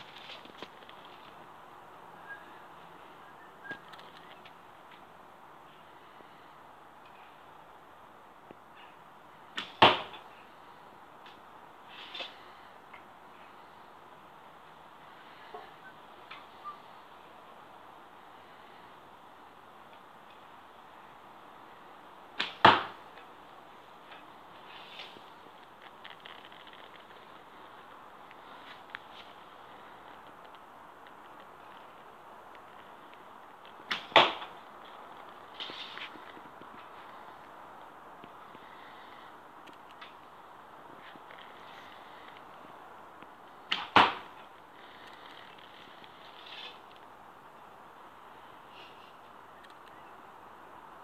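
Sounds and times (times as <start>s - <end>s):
arrow sharp cracks with ringing: 9.6s - 10.2s, 22.4s - 23.0s, 33.9s - 34.5s, 43.7s - 44.3s.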